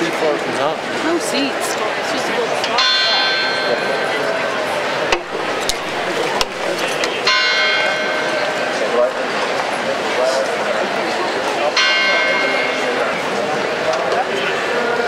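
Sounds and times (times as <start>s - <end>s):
murmur of crowd chatter: 0.0s - 15.0s
bell ringing: 2.8s - 9.0s, 11.8s - 13.4s.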